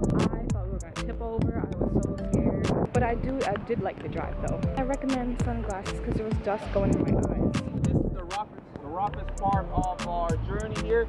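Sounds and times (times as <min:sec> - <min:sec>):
background music with steady beat: 0:00.0 - 0:11.0
man speaking: 0:07.7 - 0:11.0.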